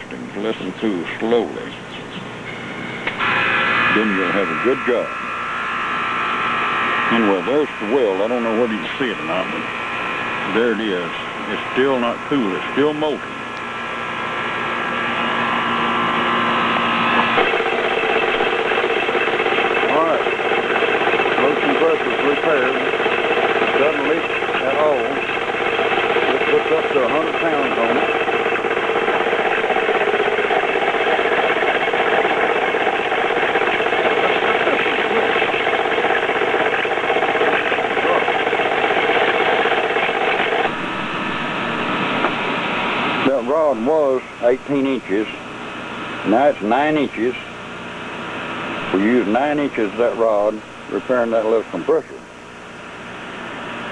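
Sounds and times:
air compressor running: 0.0s - 53.9s.

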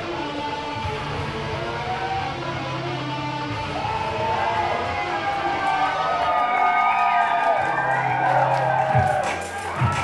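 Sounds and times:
electronic bass line: 0.0s - 6.4s
drum and bass track: 0.0s - 10.0s.

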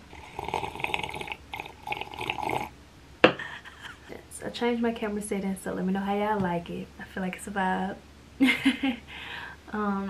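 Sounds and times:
person gargling: 0.1s - 2.7s.

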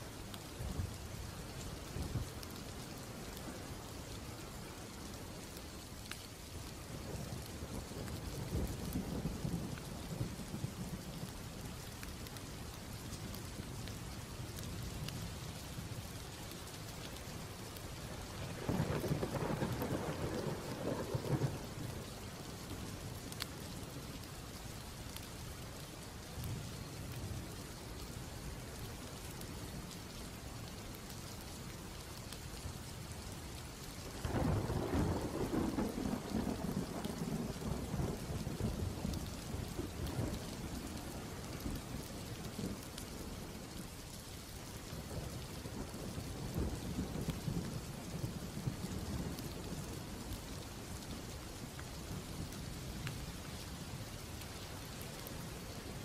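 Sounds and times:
steady rain: 0.0s - 56.0s.

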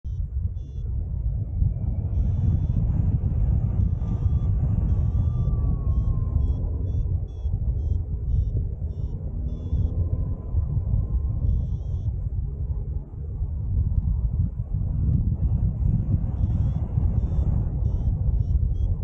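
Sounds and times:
wind rumbling on microphone: 0.0s - 19.0s
short high electronic beeps: 6.4s - 10.0s.

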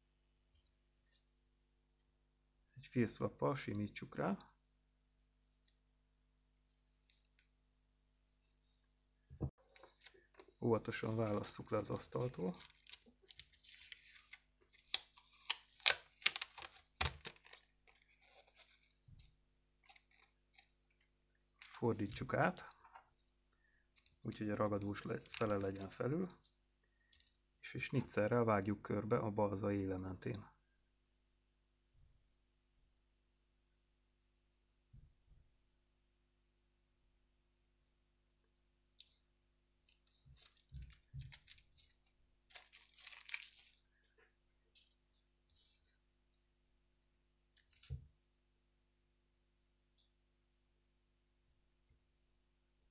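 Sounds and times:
tape crinkling in hands: 9.8s - 18.8s, 24.0s - 26.0s, 39.8s - 43.9s.

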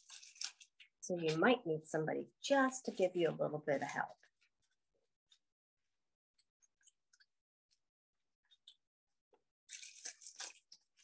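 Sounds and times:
tissue paper rustling and crinkling: 0.0s - 1.6s, 2.6s - 5.5s, 9.7s - 11.0s.

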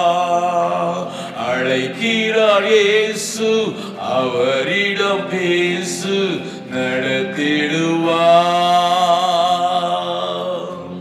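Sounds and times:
man singing solo: 0.0s - 11.0s.

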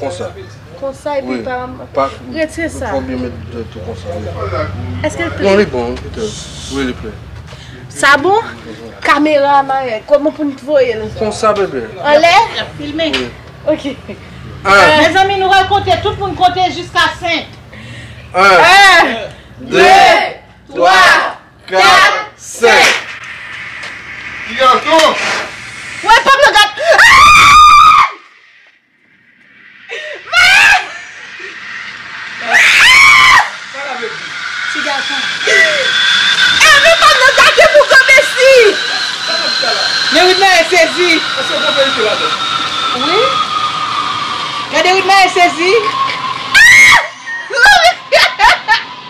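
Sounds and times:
steady hiss of smoke cannons: 5.4s - 9.0s, 22.1s - 49.0s
man and woman screaming: 26.0s - 28.6s, 29.6s - 41.4s, 45.8s - 49.0s.

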